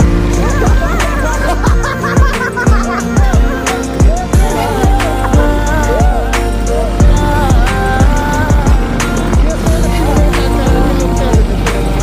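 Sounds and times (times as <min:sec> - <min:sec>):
held melody: 0:00.0 - 0:12.0
deep bass drum hits: 0:07.0 - 0:11.6.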